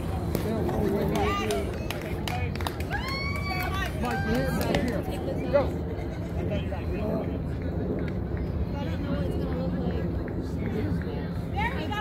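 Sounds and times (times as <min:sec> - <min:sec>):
people calling out and chattering: 0:00.0 - 0:12.0.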